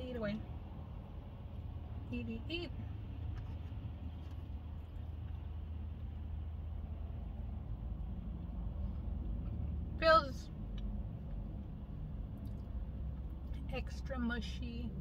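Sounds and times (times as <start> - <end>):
low vehicle rumble: 0.0 - 15.0.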